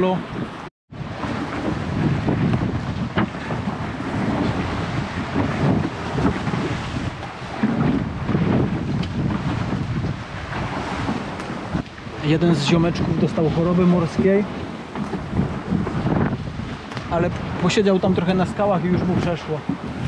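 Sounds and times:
choppy sea waves: 0:00.0 - 0:20.0
wind buffeting microphone: 0:00.0 - 0:20.0.

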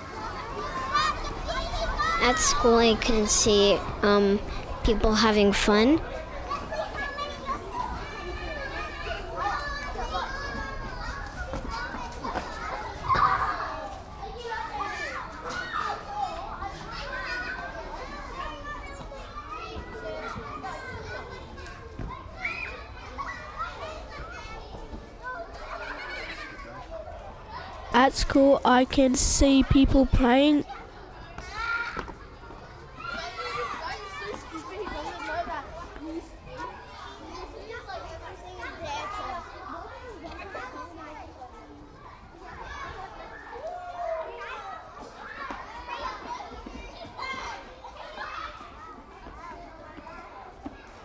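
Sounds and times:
children calling and shouting: 0:00.0 - 0:51.0.

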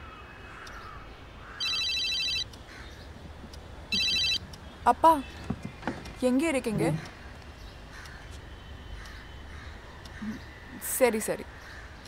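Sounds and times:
faint bird calls: 0:07.0 - 0:12.0.

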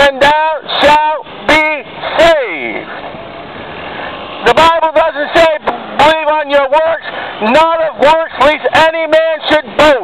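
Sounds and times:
man preaching loudly: 0:00.0 - 0:02.9, 0:04.4 - 0:10.0
street traffic noise: 0:00.0 - 0:10.0.

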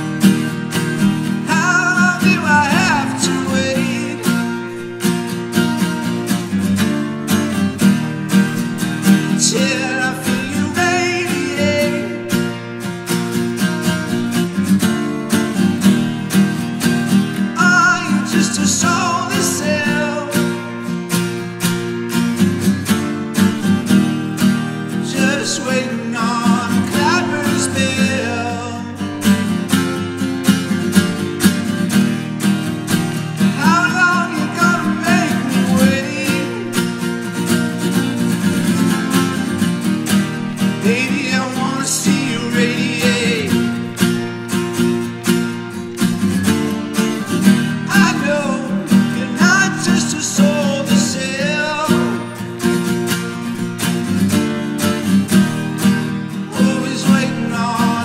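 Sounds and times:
acoustic guitar strumming: 0:00.0 - 0:58.0
man singing: 0:01.4 - 0:05.0, 0:09.2 - 0:14.7, 0:17.4 - 0:21.0, 0:24.9 - 0:29.5, 0:33.4 - 0:39.7, 0:40.5 - 0:44.0, 0:47.2 - 0:52.6, 0:56.4 - 0:58.0.

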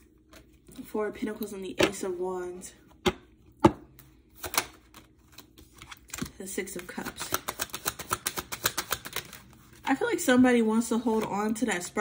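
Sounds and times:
cards clicking and rustling: 0:04.0 - 0:09.9.

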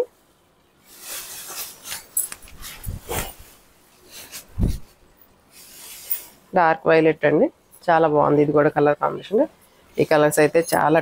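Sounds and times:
fabric rustling and swishing: 0:00.8 - 0:06.5.

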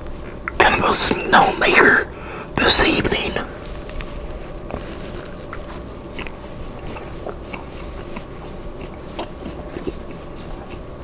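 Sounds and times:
man whispering: 0:00.5 - 0:03.6.

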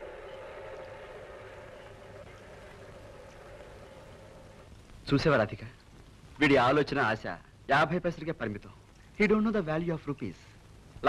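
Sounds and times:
low hum: 0:00.0 - 0:05.1
film soundtrack hiss: 0:00.0 - 0:11.0.

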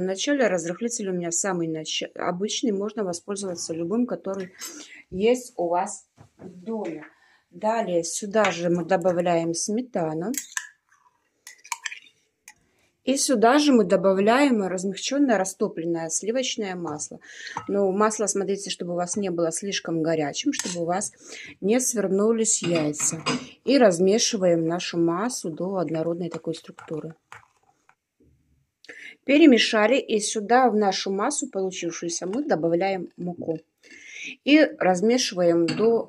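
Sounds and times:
metal spoon clinking on glass: 0:10.3 - 0:10.8, 0:11.5 - 0:12.1
spoon stirring batter in glass bowl: 0:10.3 - 0:12.7, 0:25.9 - 0:28.0
spoon scraping cream: 0:26.2 - 0:28.0.

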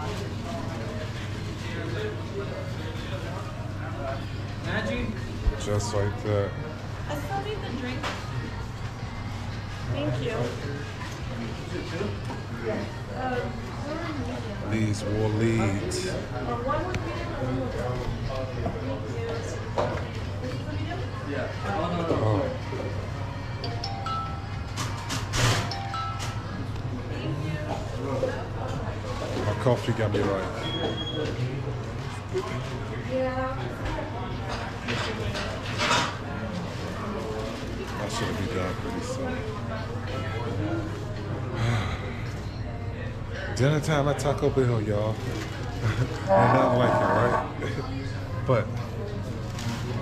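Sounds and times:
people talking indistinctly: 0:38.2 - 0:49.3.

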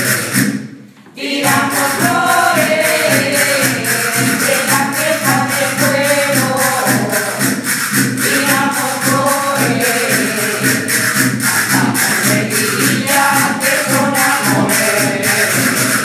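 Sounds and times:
group singing: 0:00.0 - 0:16.0
scraped and shaken percussion: 0:00.0 - 0:16.0
low friction drum drone: 0:01.5 - 0:16.0.

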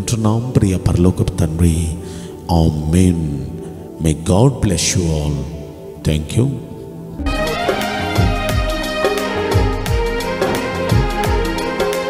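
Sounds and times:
sustained low chords music: 0:06.7 - 0:12.0.

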